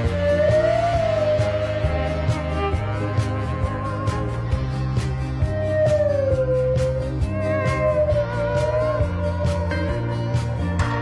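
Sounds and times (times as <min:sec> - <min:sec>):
band music: 0:00.0 - 0:11.0.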